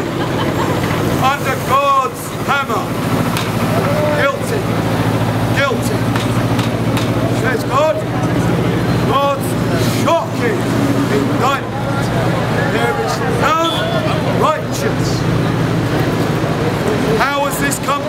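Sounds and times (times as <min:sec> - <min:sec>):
bus engine humming: 0:00.0 - 0:18.0
passing voices: 0:00.0 - 0:18.0
street traffic: 0:00.0 - 0:18.0.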